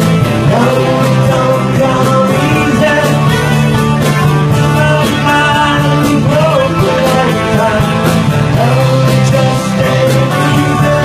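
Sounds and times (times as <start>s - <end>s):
live rock band playing: 0.0s - 11.0s
person singing: 0.0s - 11.0s.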